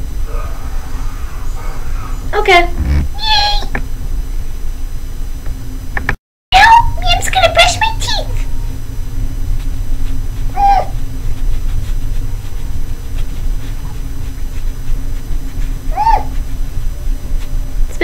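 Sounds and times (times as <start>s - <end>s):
steady low hum: 0.0s - 18.0s
high animal-like cries: 0.2s - 3.7s, 10.5s - 11.0s, 15.8s - 16.4s.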